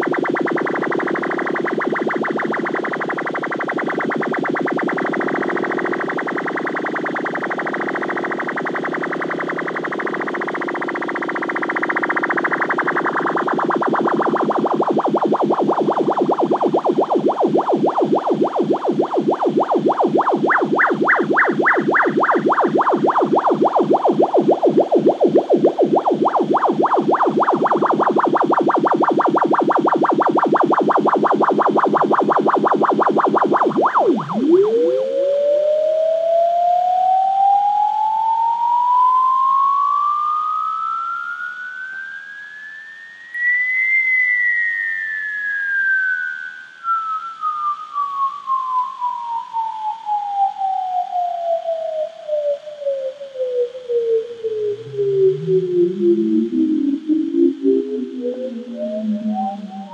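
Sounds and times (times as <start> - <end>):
distorted pulsing synth tone: 0.0 - 39.2, 53.8 - 59.9.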